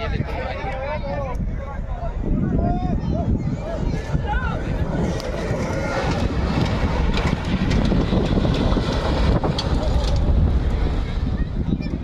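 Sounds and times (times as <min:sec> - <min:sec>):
wind rumbling on microphone: 0:00.0 - 0:12.0
jeep engine running: 0:04.2 - 0:12.0.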